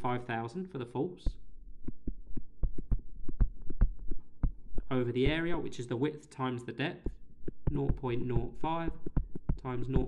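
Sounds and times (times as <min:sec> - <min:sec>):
faint low hum: 0:00.0 - 0:10.0
stylus tapping on tablet screen: 0:01.2 - 0:05.8, 0:07.0 - 0:10.0.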